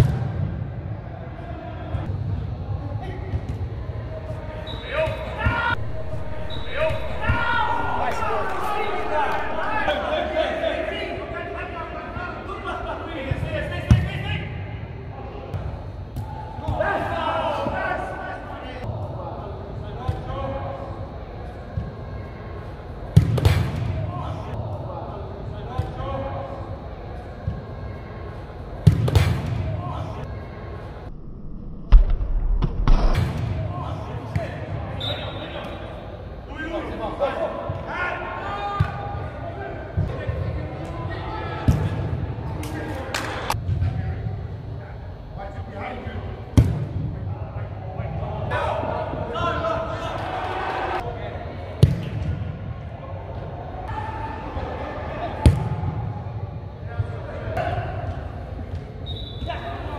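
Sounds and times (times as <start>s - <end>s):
players shouting: 4.3s - 14.6s, 48.0s - 51.6s
ball kicked with echoing thuds: 23.2s - 24.0s, 28.8s - 29.7s, 46.6s - 47.2s, 51.8s - 52.5s.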